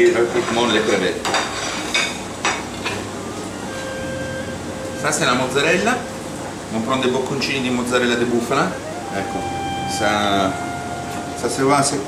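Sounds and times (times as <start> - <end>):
steady background hiss: 0.0 - 12.0
dishes clinking on metal counter: 0.4 - 3.1.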